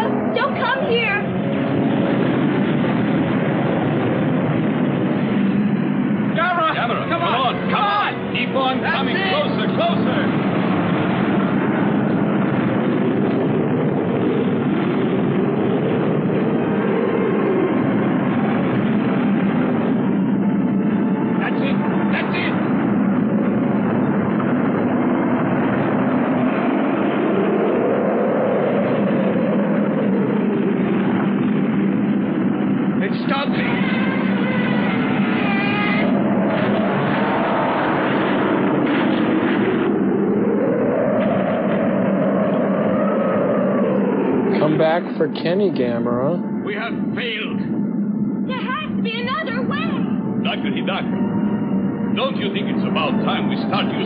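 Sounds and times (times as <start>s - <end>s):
fire and explosions rumble: 0.0s - 54.0s
short wavering cries: 33.5s - 36.6s.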